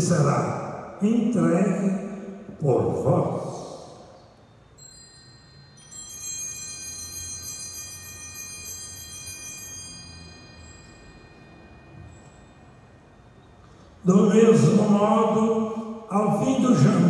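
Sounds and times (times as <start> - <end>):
altar bells ringing: 4.0 - 16.1.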